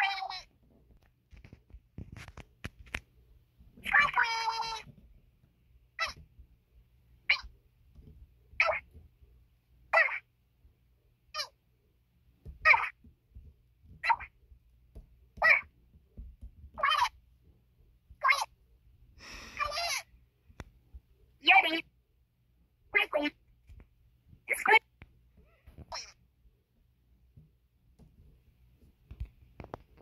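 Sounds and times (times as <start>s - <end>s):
high-pitched squeaky cries: 3.9s - 4.9s, 6.0s - 6.2s, 11.4s - 11.6s, 16.8s - 17.2s, 18.2s - 18.5s, 19.5s - 20.1s, 25.4s - 26.2s.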